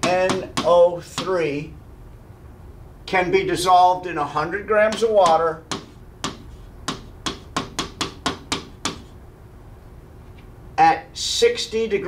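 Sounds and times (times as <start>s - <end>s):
pen tapping on a screen: 0.0s - 1.3s, 4.9s - 9.1s.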